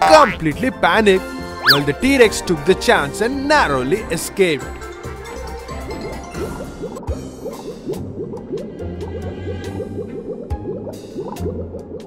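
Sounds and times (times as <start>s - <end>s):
cartoon underwater bubbling: 1.6s - 1.9s.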